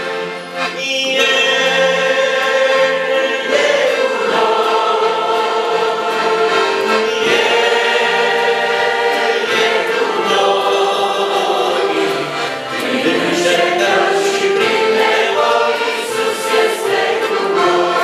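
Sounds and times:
accordion: 0.0 - 18.0
congregation singing a hymn: 0.0 - 18.0
man leading song: 0.4 - 18.0.

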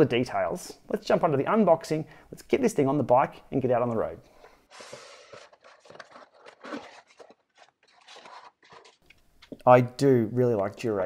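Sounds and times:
hands handling cardboard box: 4.7 - 9.0.

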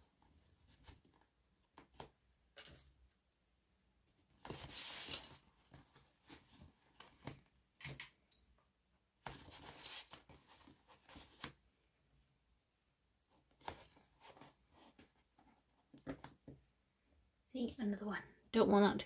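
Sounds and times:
fabric rustling: 4.4 - 7.4.

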